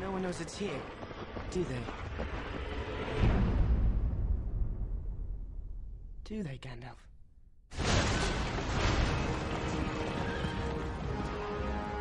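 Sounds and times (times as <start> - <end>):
dramatic orchestral music: 9.2 - 12.0.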